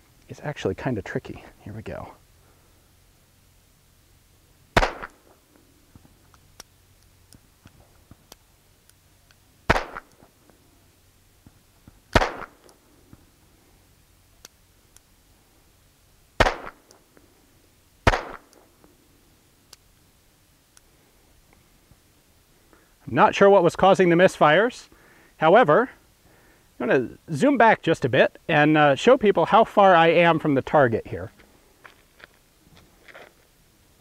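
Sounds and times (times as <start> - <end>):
revolver shots: 4.8 - 5.3, 9.7 - 10.1, 12.1 - 12.7, 16.4 - 16.8, 18.1 - 18.5
faint revolver clicks: 14.4 - 15.1.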